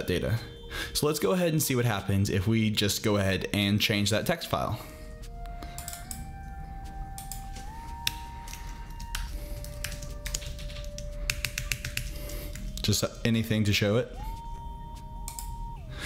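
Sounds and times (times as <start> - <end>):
quiet background music: 0.0 - 16.0
typing on computer keyboard: 5.6 - 6.2, 7.2 - 12.9.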